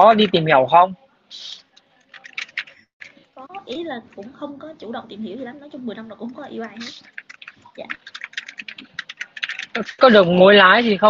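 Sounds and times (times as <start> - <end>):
typing on a keyboard: 2.0 - 3.8, 6.2 - 10.1.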